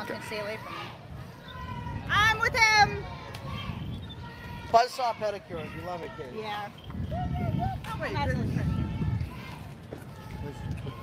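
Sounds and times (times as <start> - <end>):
faint voices: 0.0 - 11.0
low rumbling on microphone: 0.9 - 4.7, 6.1 - 11.0.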